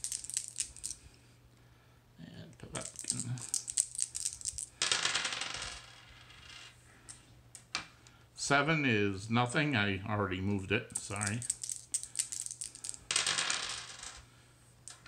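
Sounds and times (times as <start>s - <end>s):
dice rattling and clattering: 0.0s - 1.1s, 2.7s - 6.5s, 10.9s - 14.2s.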